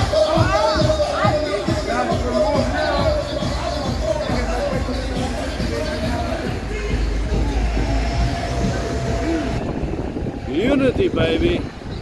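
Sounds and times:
traffic rumble: 0.0s - 12.0s
man talking: 10.4s - 11.7s.

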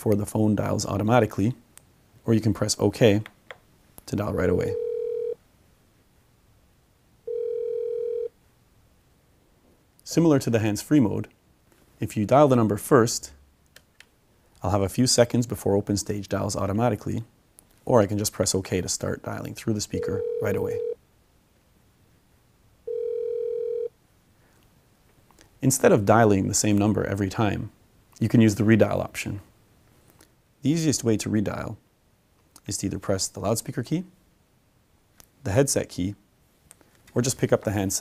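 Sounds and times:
phone ringback tone: 4.6s - 5.4s, 7.3s - 8.3s, 20.0s - 21.0s, 22.8s - 23.9s.

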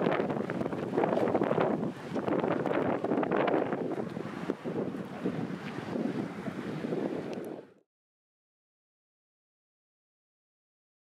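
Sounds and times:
wind buffeting microphone: 0.0s - 7.8s.

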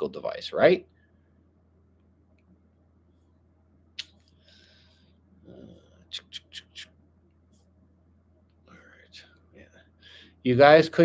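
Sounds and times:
soft breathy murmur: 4.5s - 6.8s
person whispering: 5.5s - 6.9s, 8.7s - 9.7s.

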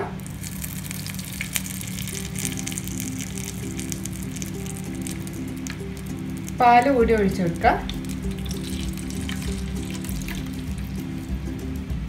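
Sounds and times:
slow background music: 0.0s - 12.0s
butter sizzling in wok: 0.2s - 11.4s.

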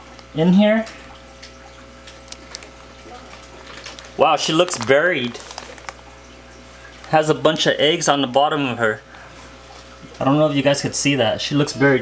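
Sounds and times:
water trickling and bubbling: 0.0s - 10.2s
faint pump hum: 0.0s - 12.0s.

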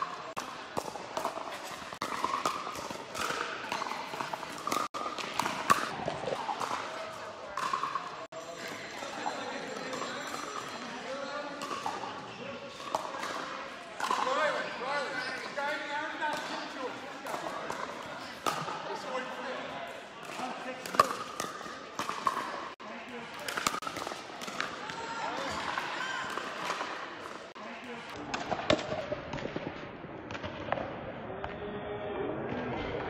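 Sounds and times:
ball bouncing on court: 0.3s - 8.8s, 20.2s - 22.6s.

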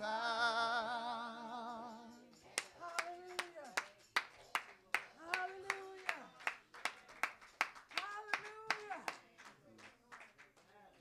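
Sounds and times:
rhythmic hand clapping: 2.0s - 10.8s.

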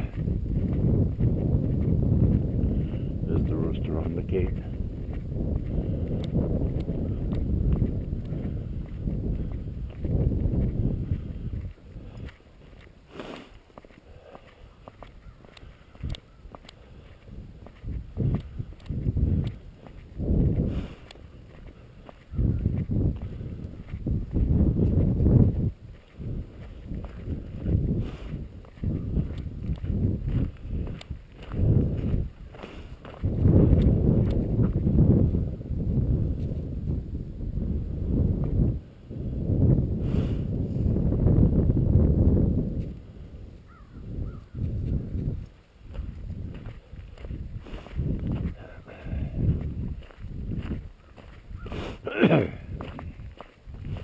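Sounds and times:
low rumble on microphone: 0.0s - 12.4s, 17.0s - 54.0s
footsteps on gravel: 0.0s - 34.9s, 44.6s - 54.0s.

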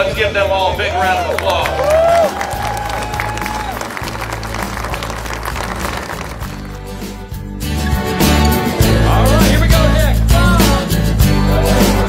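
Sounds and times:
background music: 0.0s - 12.0s
crowd applauding: 1.0s - 7.4s.

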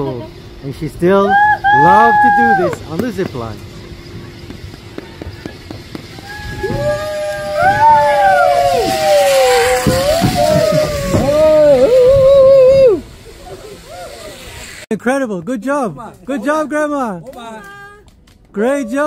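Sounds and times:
people whooping and cheering: 1.2s - 3.0s, 5.0s - 14.7s
hiss: 4.9s - 14.9s.

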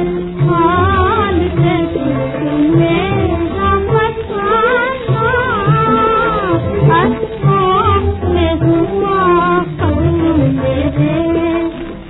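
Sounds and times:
woman singing with instruments: 0.0s - 12.0s.

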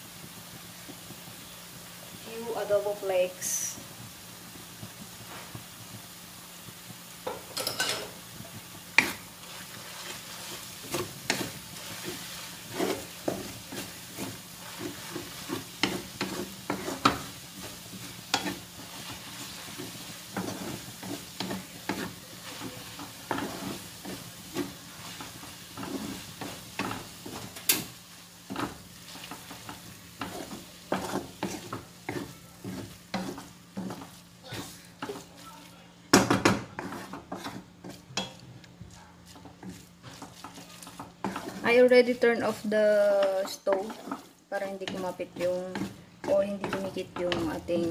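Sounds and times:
pasta sizzling in a pan: 0.0s - 47.9s
utensil scraping pan: 8.9s - 27.9s, 28.5s - 35.4s, 36.3s - 38.4s, 39.3s - 47.9s.

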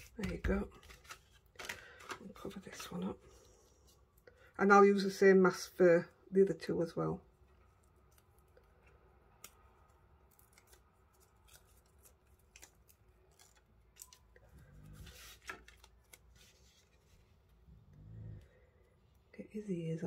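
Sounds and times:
plastic crinkling and ticking: 0.0s - 2.9s.

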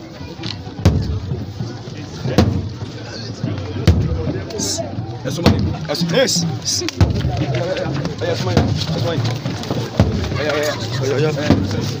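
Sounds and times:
crowd voices: 0.0s - 12.0s
large wooden drum beats: 0.7s - 12.0s.

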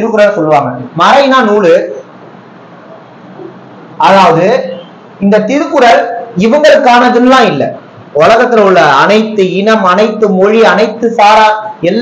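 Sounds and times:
man talking: 0.0s - 2.0s, 4.0s - 12.0s.

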